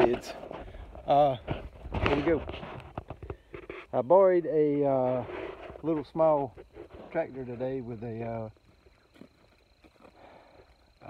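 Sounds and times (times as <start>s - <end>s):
person speaking: 0.0s - 0.4s, 3.9s - 8.6s.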